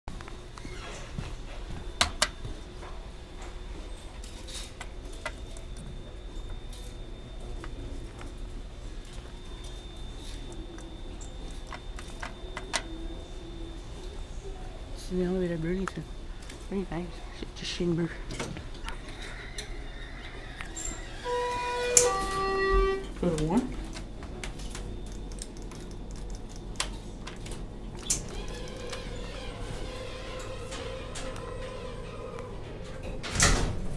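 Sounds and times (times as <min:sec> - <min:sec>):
steady low hum: 0:00.1 - 0:33.9.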